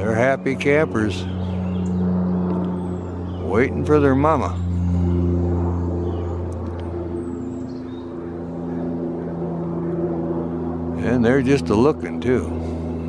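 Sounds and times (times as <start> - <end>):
engine humming: 0.0 - 13.0.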